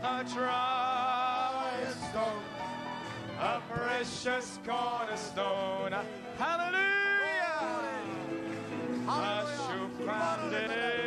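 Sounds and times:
congregation singing gospel: 0.0 - 11.0.

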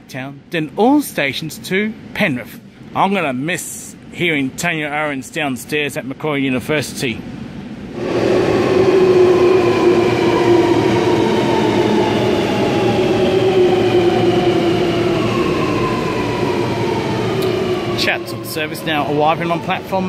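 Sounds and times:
metro train braking: 7.4 - 20.0.

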